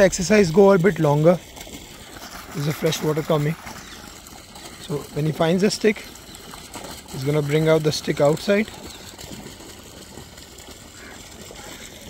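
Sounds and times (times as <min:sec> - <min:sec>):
open water background noise: 0:00.0 - 0:12.0.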